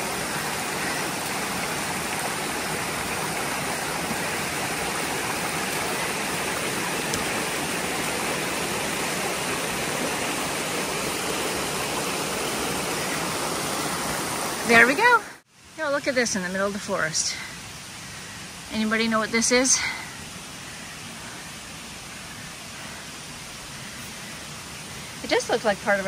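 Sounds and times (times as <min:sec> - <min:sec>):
stream rushing over rocks: 0:00.0 - 0:26.0.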